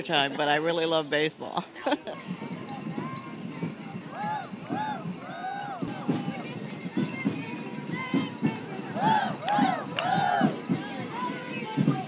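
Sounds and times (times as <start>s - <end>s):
children chanting: 8.1s - 12.0s.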